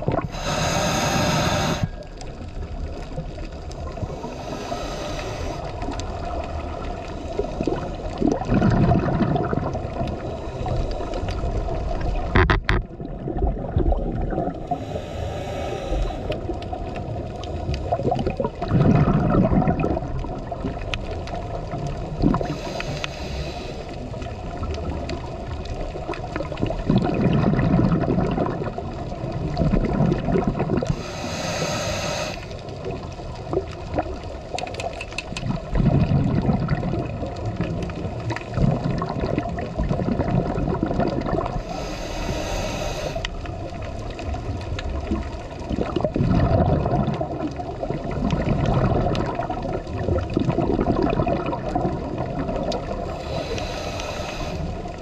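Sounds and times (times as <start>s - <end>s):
gurgling exhaust bubbles: 0.0s - 1.8s, 5.6s - 10.5s, 11.3s - 14.8s, 16.4s - 22.8s, 24.0s - 31.0s, 35.4s - 41.8s, 43.4s - 55.0s
regulator hissing inhale: 0.3s - 2.1s, 4.0s - 5.9s, 10.2s - 11.6s, 14.6s - 16.5s, 22.4s - 24.2s, 30.9s - 32.6s, 41.6s - 43.4s, 53.0s - 55.0s.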